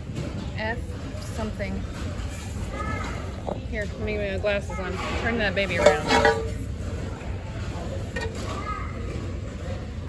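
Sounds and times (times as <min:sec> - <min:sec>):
low store background rumble: 0:00.0 - 0:10.0.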